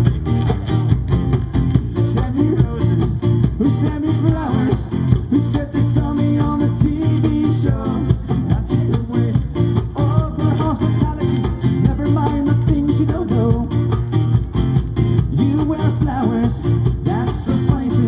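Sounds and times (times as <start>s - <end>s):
acoustic guitar strumming: 0.0s - 18.0s
man singing: 1.9s - 14.0s, 15.2s - 18.0s.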